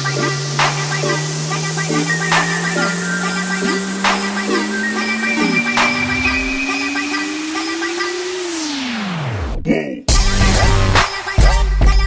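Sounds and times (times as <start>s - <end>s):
synth note gliding upward: 0.0s - 9.5s.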